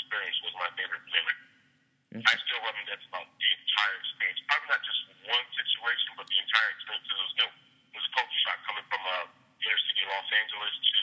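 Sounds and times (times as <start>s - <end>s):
man talking over telephone: 0.0s - 1.4s, 2.2s - 11.0s.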